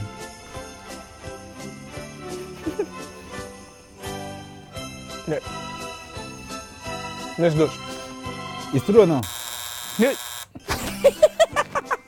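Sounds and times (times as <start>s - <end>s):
electronic buzzer tone: 9.2s - 10.6s.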